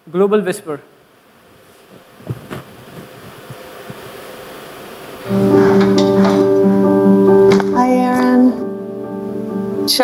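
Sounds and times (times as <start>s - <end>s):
hall background hum and hiss: 0.0s - 10.0s.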